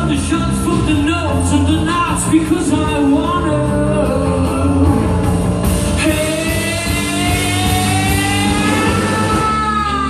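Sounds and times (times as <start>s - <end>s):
rock band playing loudly: 0.0s - 10.0s.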